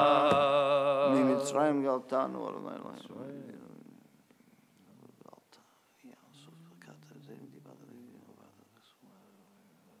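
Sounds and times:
man humming low: 0:00.0 - 0:01.4
man murmuring: 0:00.0 - 0:01.7.

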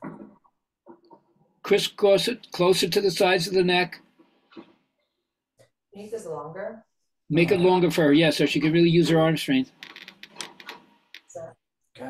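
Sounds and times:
strap buckle clicking and rattling: 0:09.8 - 0:11.3.

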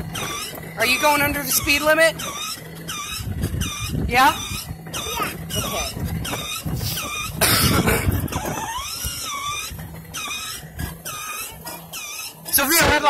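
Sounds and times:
plastic wheels rolling on asphalt: 0:00.0 - 0:13.0
small electric motor hum: 0:00.0 - 0:13.0
toy car music: 0:00.0 - 0:13.0
person laughing: 0:07.4 - 0:08.8.

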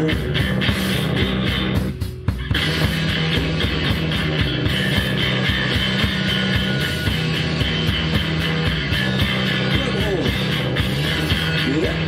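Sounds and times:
electric guitar playing: 0:00.0 - 0:12.0
low bass notes: 0:00.0 - 0:12.0
steady drum beat: 0:00.0 - 0:12.0.

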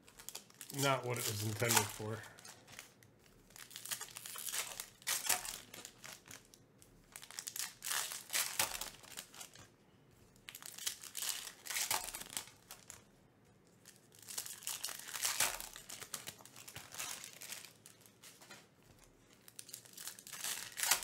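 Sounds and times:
foil wrappers crinkling and tearing: 0:00.0 - 0:09.7, 0:10.3 - 0:21.0.

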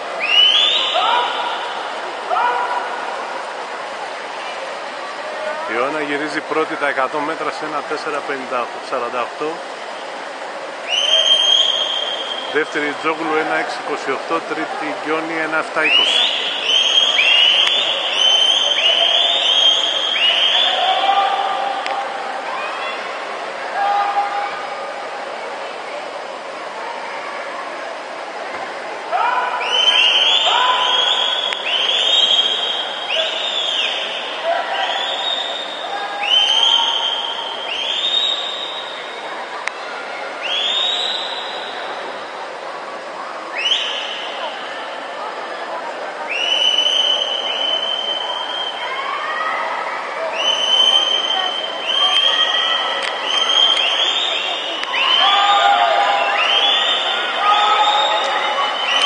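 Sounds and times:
pool hall din: 0:00.0 - 0:59.0
spectators cheering: 0:10.8 - 0:24.8, 0:29.1 - 0:39.4, 0:46.2 - 0:59.0.

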